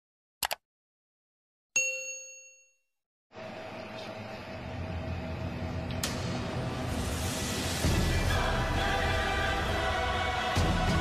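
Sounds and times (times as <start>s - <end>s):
bell ding: 1.8s - 2.9s.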